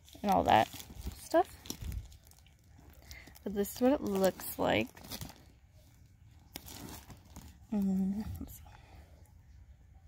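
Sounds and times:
plastic shrink-wrap crinkling: 0:00.0 - 0:08.6.

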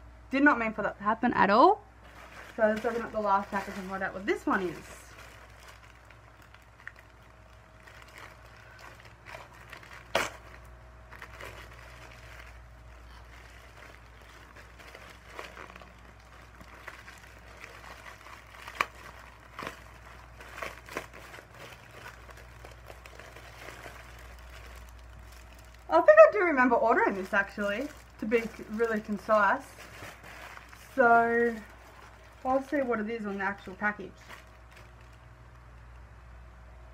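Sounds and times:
plastic bag rustling: 0:02.0 - 0:36.1
plastic bag snapping: 0:02.1 - 0:26.0, 0:26.9 - 0:36.0.

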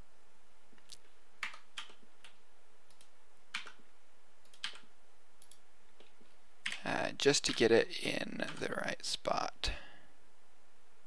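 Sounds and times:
faint steady hiss: 0:00.0 - 0:11.0
keyboard and mouse clicks: 0:00.8 - 0:03.8, 0:04.4 - 0:07.7.

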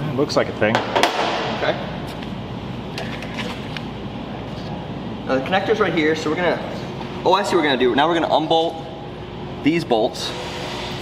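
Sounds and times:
workshop background noise: 0:00.0 - 0:11.0.

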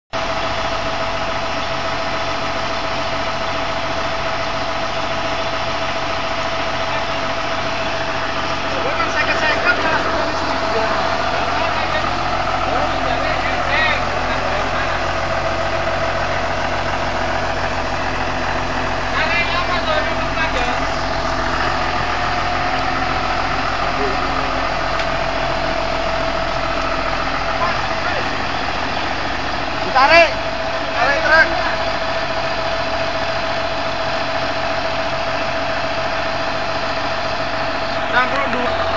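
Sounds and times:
tractor diesel engine running: 0:00.1 - 0:38.9
voices calling out: 0:00.3 - 0:38.9.

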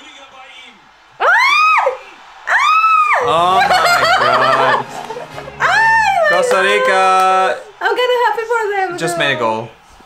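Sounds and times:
woman squealing excitedly: 0:01.2 - 0:04.7.

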